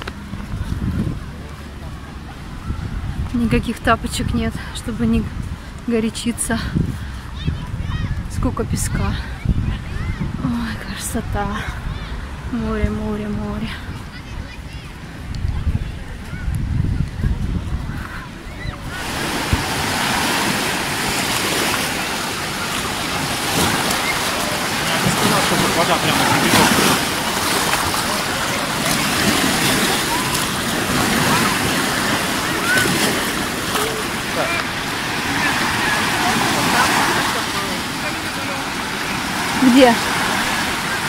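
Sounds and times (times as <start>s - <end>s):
waves washing on sandy beach: 0.0s - 41.0s
wind buffeting microphone: 0.0s - 41.0s.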